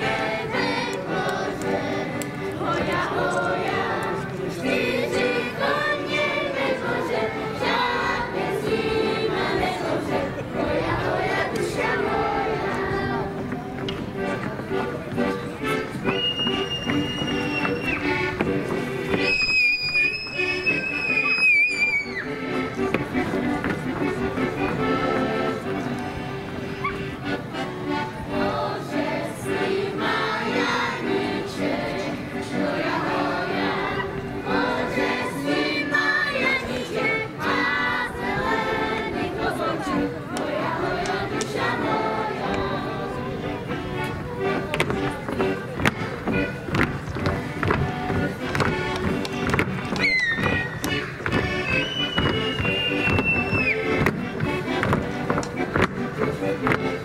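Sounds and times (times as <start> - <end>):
choir singing: 0.0 - 13.4, 28.0 - 44.0
music: 0.0 - 57.0.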